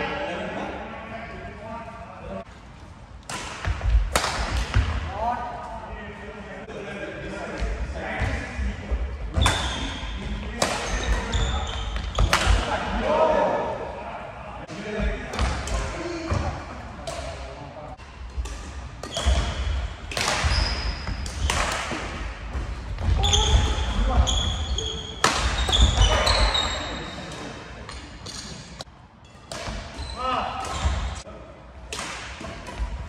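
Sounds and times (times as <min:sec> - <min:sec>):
racket hitting shuttlecock: 0:03.2 - 0:05.0, 0:10.6 - 0:11.3, 0:18.4 - 0:22.8, 0:25.1 - 0:26.2, 0:29.3 - 0:30.0, 0:31.9 - 0:33.0.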